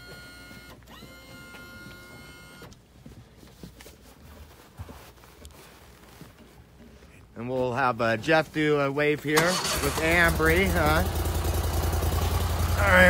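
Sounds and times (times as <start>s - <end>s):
small electric motor whining: 0.0s - 2.6s.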